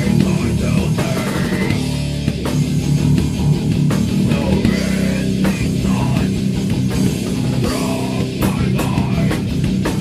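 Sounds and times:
drum and cymbal hits: 0.0s - 10.0s
heavy rock music: 0.0s - 10.0s.

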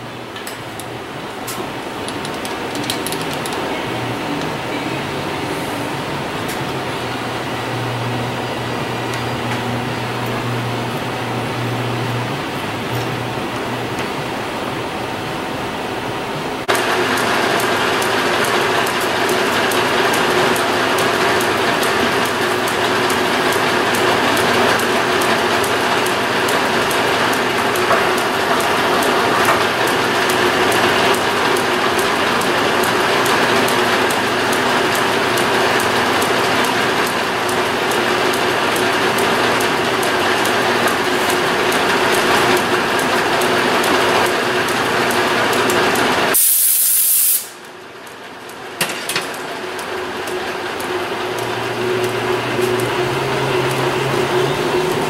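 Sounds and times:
metal lathe running: 0.0s - 15.4s, 16.6s - 46.4s, 47.8s - 55.0s.

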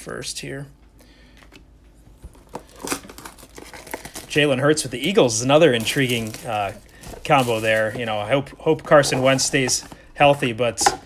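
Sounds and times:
cards and boxes handled on table: 8.8s - 11.0s.

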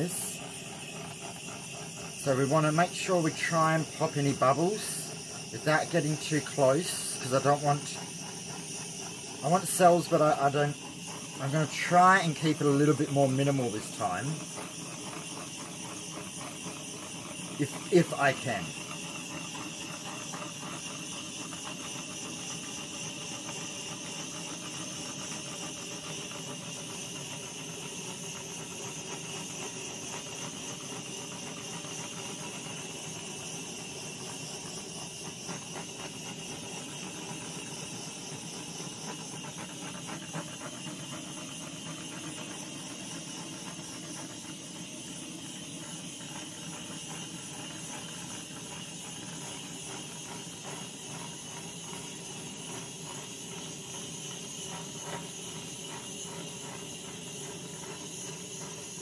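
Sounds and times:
gas torch hissing: 0.0s - 59.0s.

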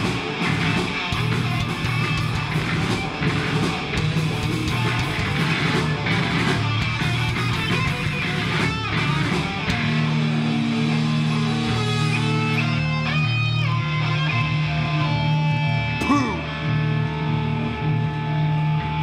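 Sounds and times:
bent guitar notes: 0.0s - 19.0s
punk band playing live: 0.0s - 19.0s.

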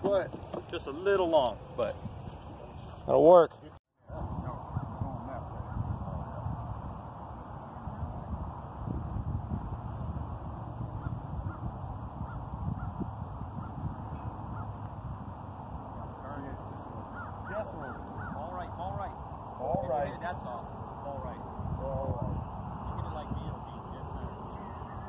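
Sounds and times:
wind rumbling on microphone: 0.0s - 3.4s, 4.0s - 25.0s.

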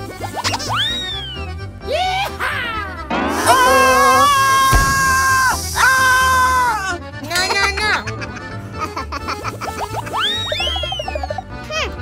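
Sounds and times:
wavering high tone: 3.1s - 5.8s
air hissing from burst ball: 4.1s - 6.8s.

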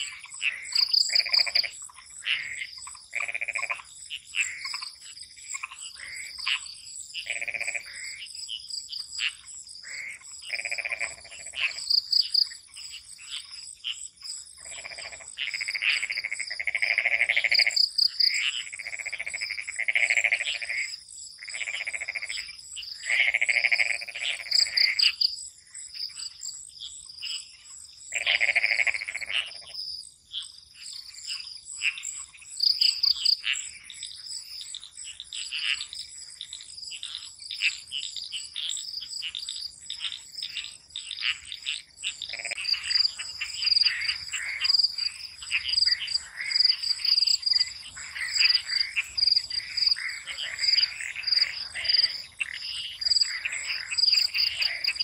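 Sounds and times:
crickets trilling: 0.0s - 55.0s
frogs croaking: 0.0s - 55.0s.

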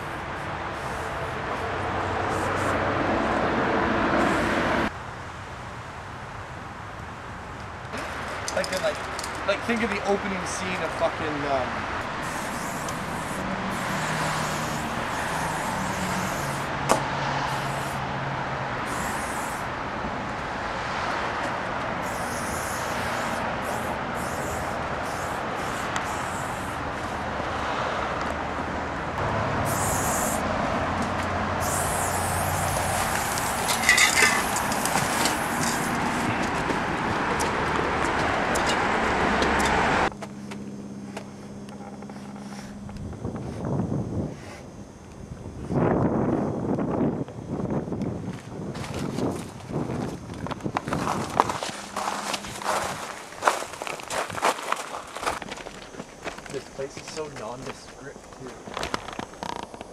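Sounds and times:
street traffic noise: 0.0s - 59.9s
spray paint can hissing: 2.3s - 2.8s, 12.0s - 18.0s, 18.8s - 19.7s, 22.0s - 27.1s, 29.6s - 30.5s, 31.6s - 36.3s.

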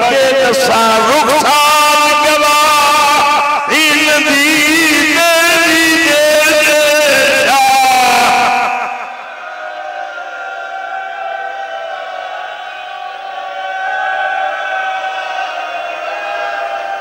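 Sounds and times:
amplified orator speaking: 0.0s - 9.1s.

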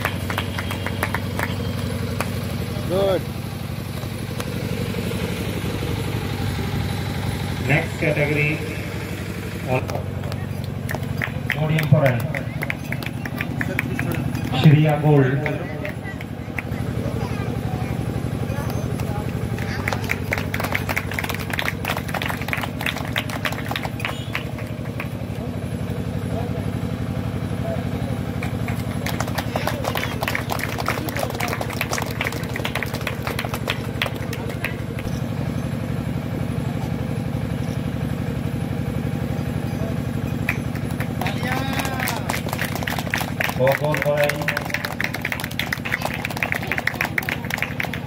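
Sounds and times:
engine humming: 0.0s - 48.0s.

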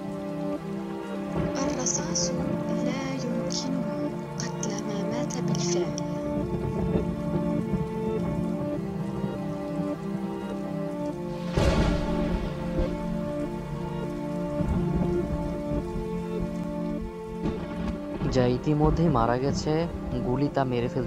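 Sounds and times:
dark ambient music: 0.0s - 21.0s
rain: 0.0s - 21.0s
thunderclap: 6.2s - 9.5s, 11.3s - 21.0s.

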